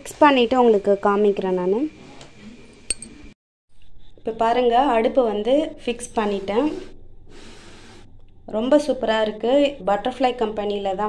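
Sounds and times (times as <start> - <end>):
sharp metal clink: 2.9 - 3.2.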